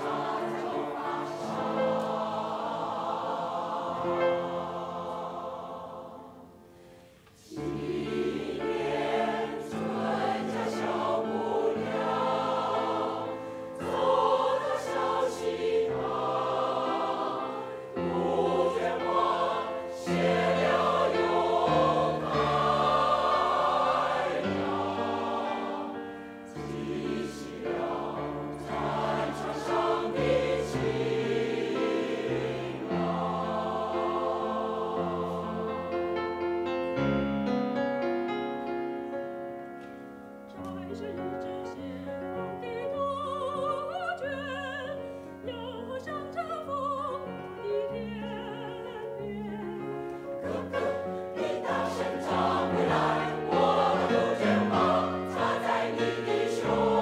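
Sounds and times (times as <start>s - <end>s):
mixed choir singing: 0.0s - 6.8s, 7.4s - 36.5s, 40.8s - 57.0s.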